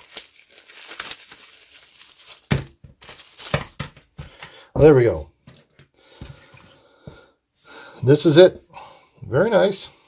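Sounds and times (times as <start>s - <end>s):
soft breathing: 5.9s - 8.1s.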